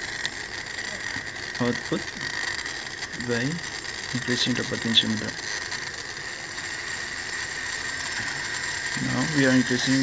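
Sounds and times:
light mechanical rattle: 0.0 - 10.0
small motor whining: 0.0 - 10.0.

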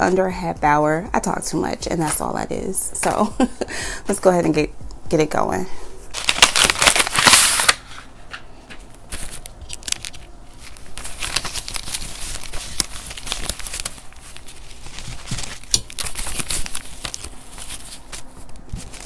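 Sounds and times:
banknotes rustling and flicking: 6.1 - 19.0
paper envelope rustling: 6.1 - 19.0.

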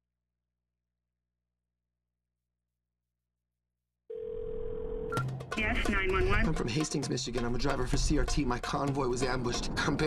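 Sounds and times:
telephone tone: 4.1 - 5.3.

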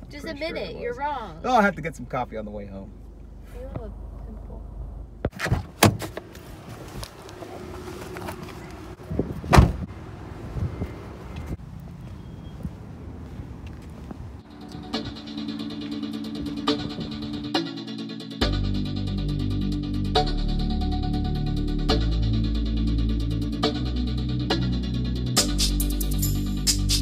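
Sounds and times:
car cabin rumble: 3.0 - 11.6
car doors shutting: 5.2 - 9.9
background music with beat: 14.5 - 27.0.

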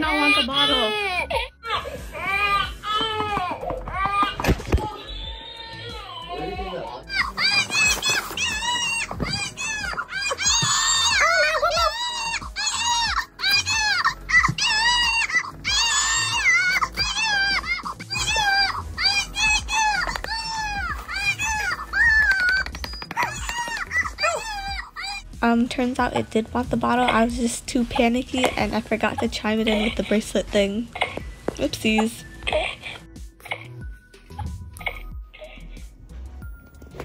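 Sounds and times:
infant simulator doll crying: 0.0 - 25.3.

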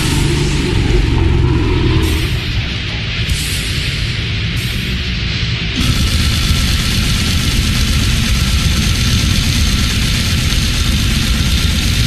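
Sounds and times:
distorted extreme metal music: 0.0 - 12.0.

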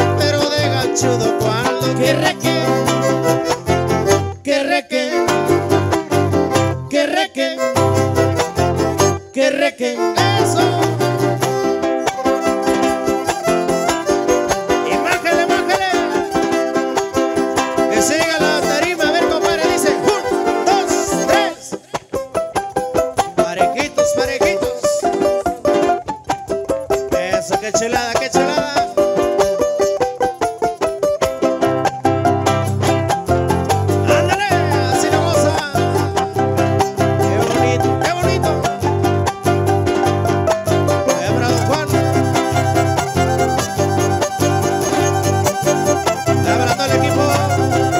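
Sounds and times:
jarana and guitar strumming: 0.0 - 47.9
violin: 0.0 - 47.9
deep bass line: 32.0 - 47.9.

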